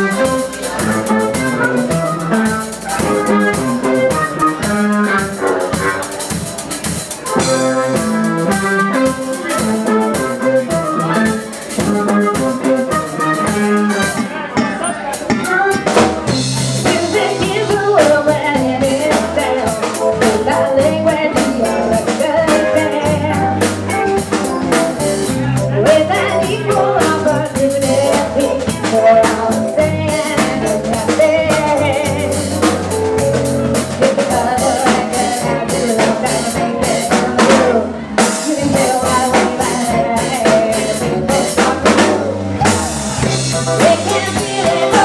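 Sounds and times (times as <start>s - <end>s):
drum kit beat: 0.0s - 45.0s
electric guitar: 0.0s - 45.0s.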